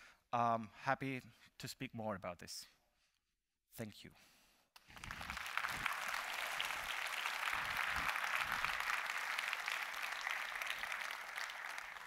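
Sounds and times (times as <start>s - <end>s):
audience applauding: 4.8s - 12.0s.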